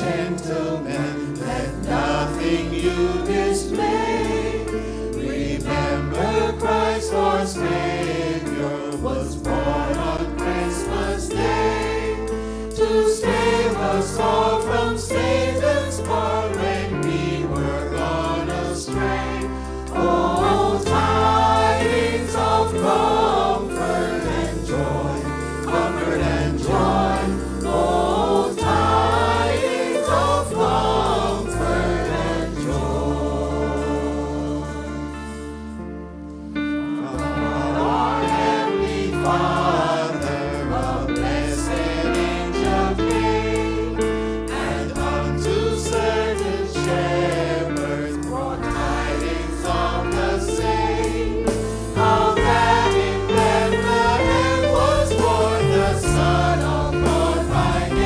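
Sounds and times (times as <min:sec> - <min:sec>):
gospel choir singing: 0:00.0 - 0:58.0.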